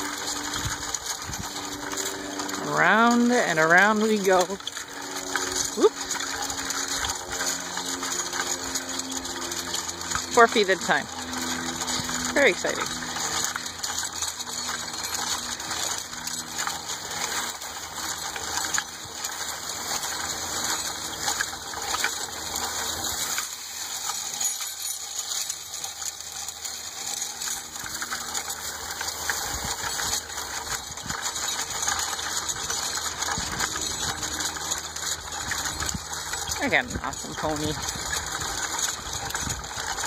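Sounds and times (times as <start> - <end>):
chain harrow rattling and clinking: 0.0 - 40.0.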